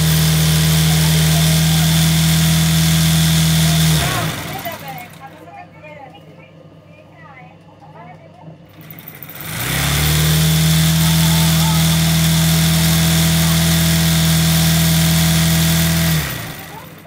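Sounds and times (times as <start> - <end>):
electric sewing machine running: 0.0 - 5.4, 8.7 - 17.0.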